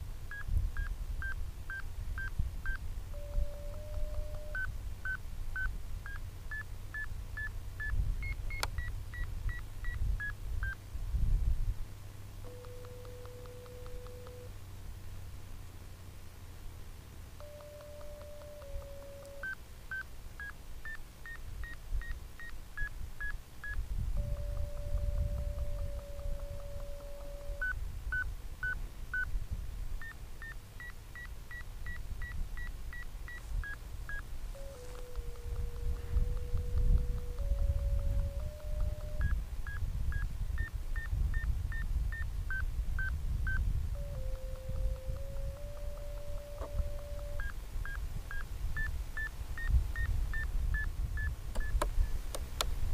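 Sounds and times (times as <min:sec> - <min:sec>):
wind rumble on microphone: 0:00.0 - 0:04.7, 0:07.8 - 0:11.9, 0:23.8 - 0:28.4, 0:29.2 - 0:30.0, 0:35.0 - 0:52.9
short electronic beeps: 0:00.3 - 0:09.3, 0:17.4 - 0:27.8, 0:30.0 - 0:52.2
held electronic tone: 0:03.1 - 0:04.7, 0:12.4 - 0:14.5, 0:17.4 - 0:19.6, 0:24.2 - 0:27.8, 0:33.3 - 0:40.3, 0:43.5 - 0:48.9.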